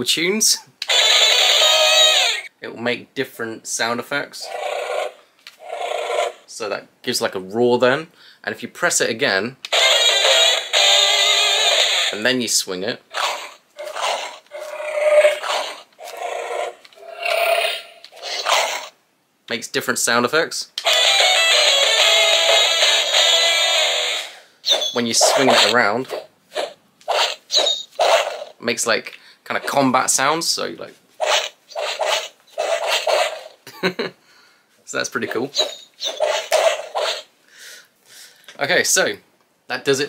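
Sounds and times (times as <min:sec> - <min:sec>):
toy electronic combat effects: 0:00.8 - 0:02.5, 0:09.7 - 0:12.3, 0:18.0 - 0:18.9, 0:20.8 - 0:25.8, 0:26.6 - 0:28.6, 0:31.2 - 0:33.6, 0:35.4 - 0:37.3.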